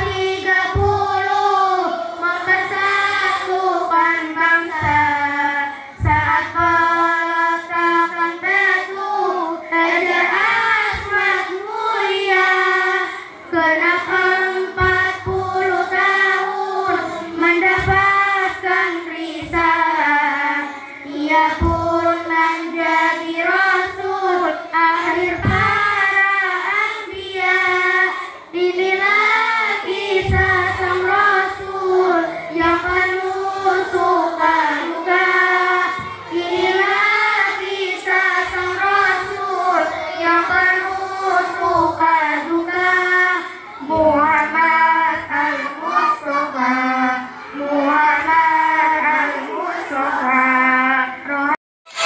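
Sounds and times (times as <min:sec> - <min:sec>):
girl singing into a microphone: 0:00.0 - 0:52.0.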